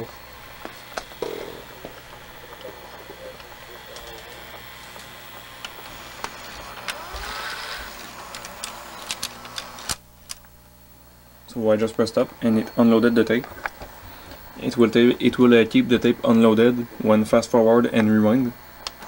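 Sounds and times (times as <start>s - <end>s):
whine rising in pitch: 0.0s - 10.0s
motor hum: 0.0s - 17.2s
small mechanical clicks: 3.9s - 10.4s.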